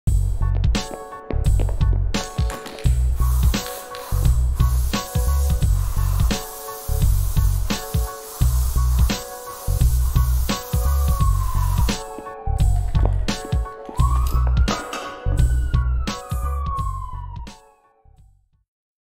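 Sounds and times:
upbeat music with heavy bass beat: 0:00.1 - 0:17.6
spray paint can hissing: 0:02.2 - 0:12.2.

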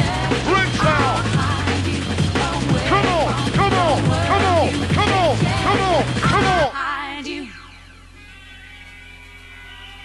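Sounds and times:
faint held synth tones: 0:07.2 - 0:10.0.

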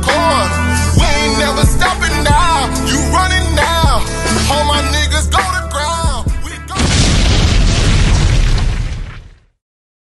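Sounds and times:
boom with rumble: 0:06.8 - 0:09.6.

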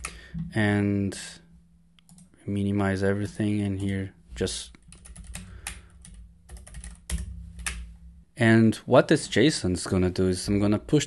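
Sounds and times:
computer keyboard typing: 0:02.1 - 0:02.3, 0:04.8 - 0:07.8.

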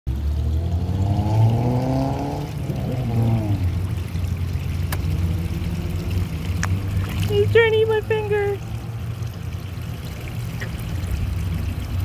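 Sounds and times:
low engine rumble: 0:02.3 - 0:12.0.

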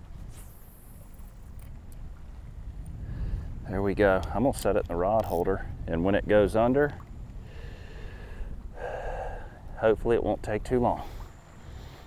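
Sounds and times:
wind buffeting microphone: 0:00.0 - 0:12.0
short breath: 0:07.4 - 0:09.6.

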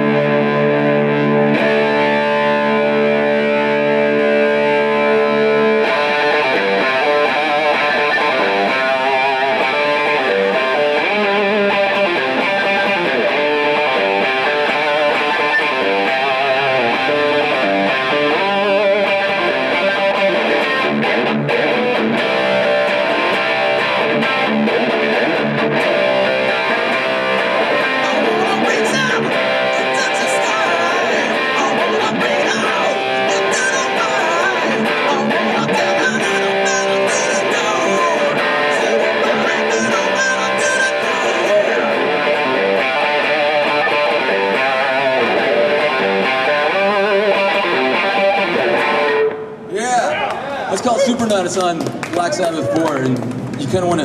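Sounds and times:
overdriven electric guitar: 0:00.0 - 0:54.0.

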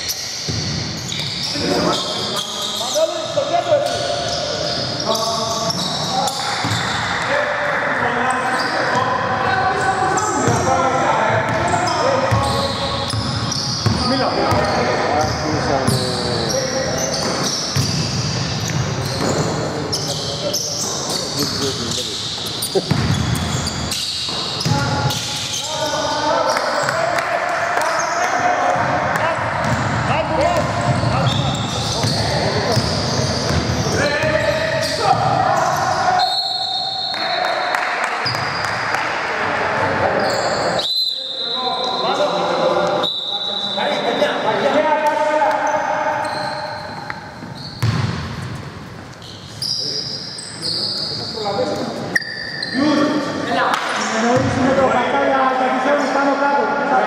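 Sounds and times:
players calling out: 0:01.0 - 0:48.2
referee's whistle: 0:35.6 - 0:38.6, 0:40.2 - 0:42.2, 0:42.9 - 0:44.0, 0:52.1 - 0:52.8.

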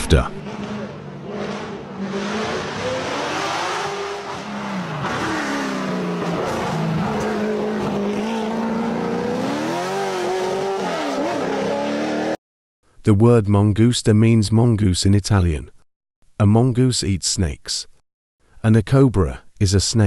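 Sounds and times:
sports car engine revving: 0:00.4 - 0:12.4.

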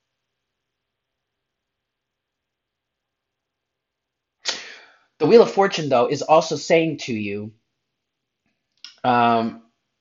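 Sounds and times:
sharp intake of breath: 0:04.4 - 0:05.2.

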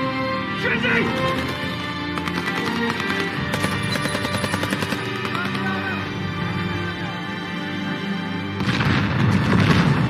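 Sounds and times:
tense film score: 0:00.0 - 0:10.0
rapid automatic gunfire: 0:01.1 - 0:05.9.

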